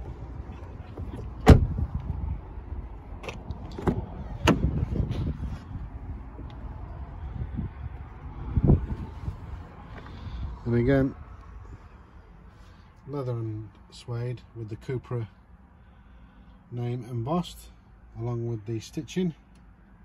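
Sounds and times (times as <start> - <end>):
low handling rumble: 0.0 - 11.9
car door shutting with a thud: 1.0 - 1.9, 3.2 - 5.3.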